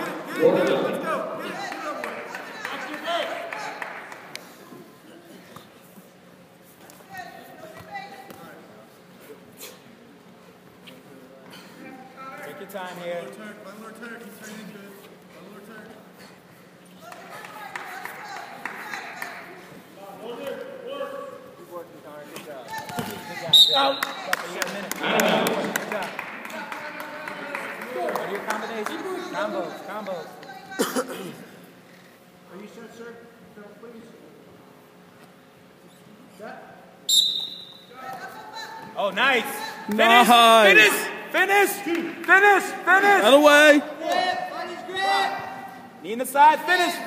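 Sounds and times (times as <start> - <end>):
murmur of voices: 0.0 - 6.2
murmur of spectators: 0.0 - 32.5
referee's whistle blown: 23.5 - 24.2, 37.1 - 37.9.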